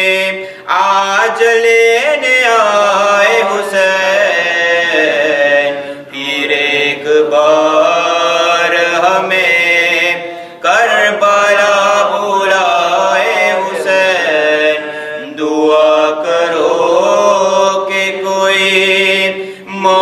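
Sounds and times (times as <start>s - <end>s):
man chanting: 0.0s - 20.0s.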